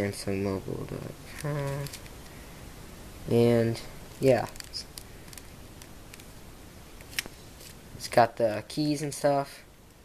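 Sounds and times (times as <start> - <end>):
quiet room hiss: 0.0 - 10.0.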